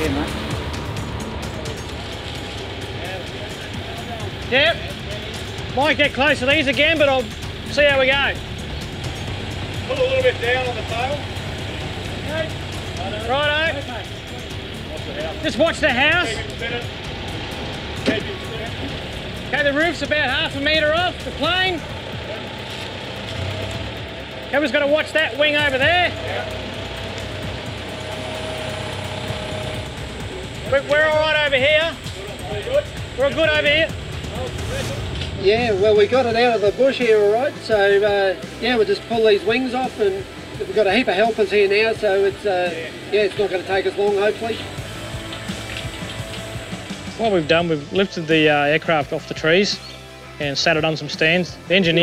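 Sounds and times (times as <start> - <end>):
faint voices: 0.0 - 9.1
background music: 0.0 - 52.0
diesel engine rumbling: 0.0 - 52.0.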